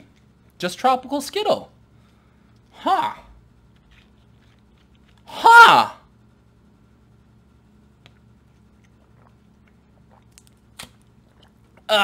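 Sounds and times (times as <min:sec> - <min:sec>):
man gulping soda: 0:08.0 - 0:12.0.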